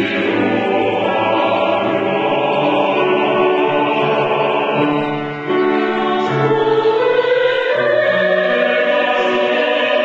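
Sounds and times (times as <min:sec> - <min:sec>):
church choir singing: 0:00.0 - 0:10.0.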